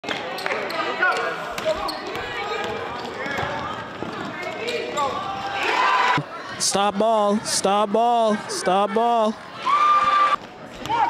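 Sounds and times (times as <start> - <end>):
basketball bouncing on gym floor: 1.6 - 4.9
overlapping voices: 5.4 - 9.6.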